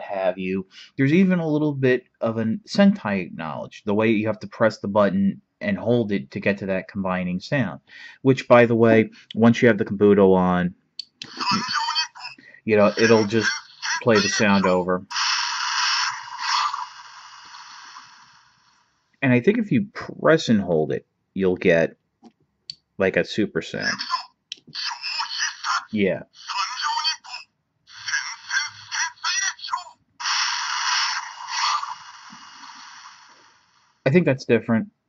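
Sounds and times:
toy speaker noisy rush effect: 0:11.2 - 0:18.9, 0:23.8 - 0:34.0.

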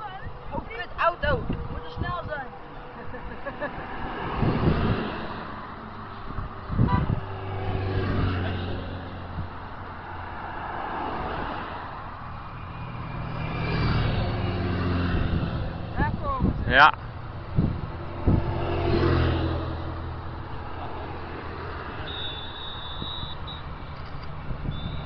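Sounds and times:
cars passing on road: 0:00.0 - 0:25.0.

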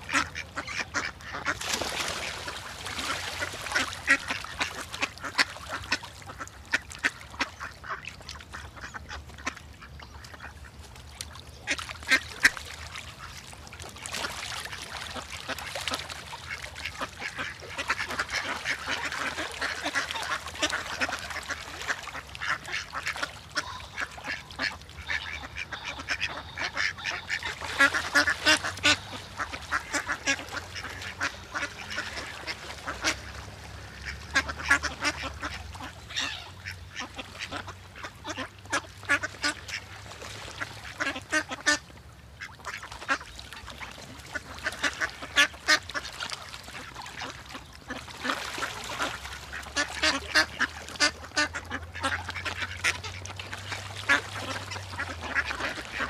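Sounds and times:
ducks quacking: 0:00.0 - 0:10.8, 0:11.6 - 0:13.4, 0:14.0 - 0:56.0.

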